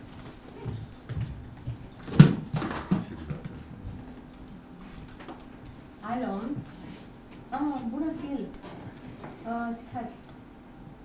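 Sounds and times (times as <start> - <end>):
footsteps on a stage floor: 0.0 - 4.5.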